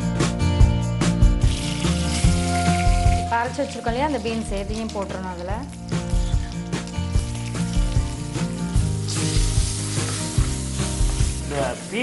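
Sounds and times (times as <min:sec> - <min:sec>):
spices sizzling in hot oil: 0:01.2 - 0:12.0.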